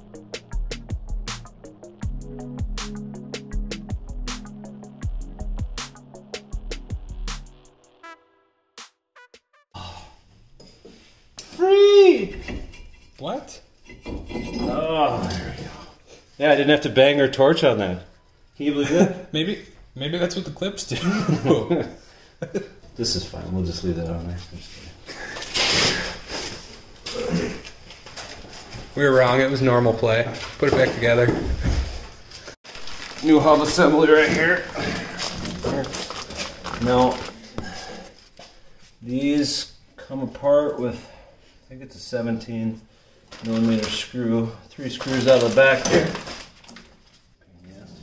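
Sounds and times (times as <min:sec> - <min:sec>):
person's wordless vocal note: 0:09.7 - 0:10.2
plastic bag crinkling: 0:32.6 - 0:37.5, 0:43.3 - 0:44.2, 0:44.8 - 0:47.1.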